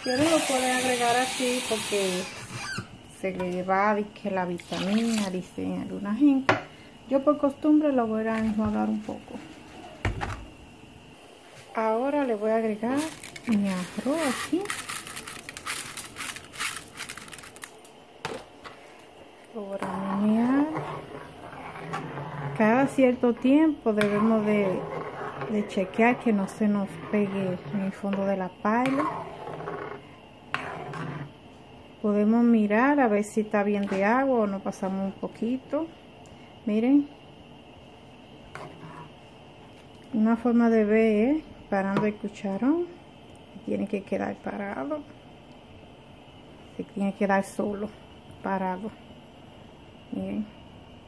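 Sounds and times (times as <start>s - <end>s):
broth simmering hiss: 0.0s - 3.2s, 3.9s - 51.0s
rice pouring into a pot: 13.0s - 17.7s
spoon stirring in pan: 19.7s - 31.4s, 38.5s - 39.2s.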